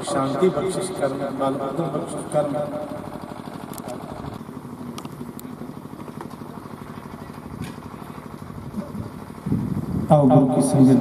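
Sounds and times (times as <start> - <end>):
electric fans droning: 0.0 - 11.0.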